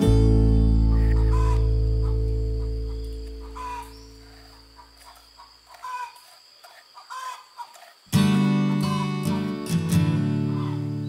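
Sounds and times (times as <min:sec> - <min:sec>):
acoustic guitar music: 0:00.0 - 0:05.0, 0:08.1 - 0:11.0
chicken clucking: 0:02.6 - 0:08.0.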